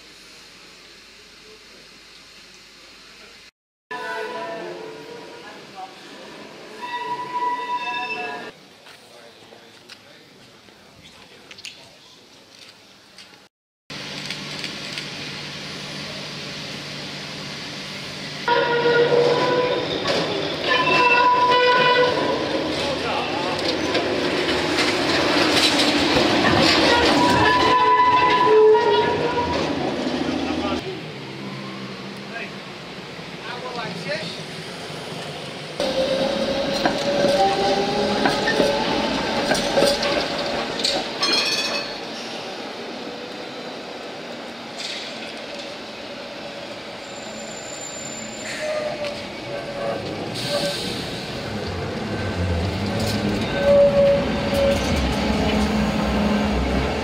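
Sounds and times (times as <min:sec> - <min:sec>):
tram wheels squealing on rails: 0:04.0 - 0:08.6, 0:15.8 - 0:30.8, 0:34.2 - 0:43.8, 0:44.5 - 0:57.0.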